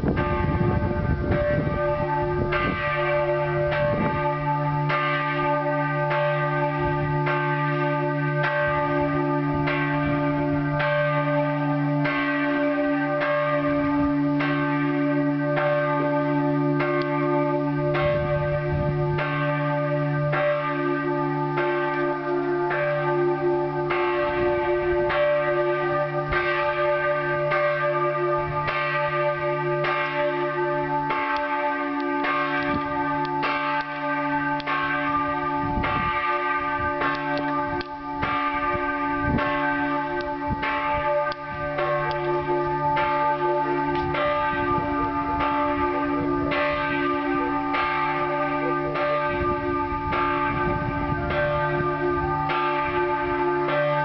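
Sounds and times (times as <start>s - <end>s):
church bells ringing: 0.0s - 54.0s.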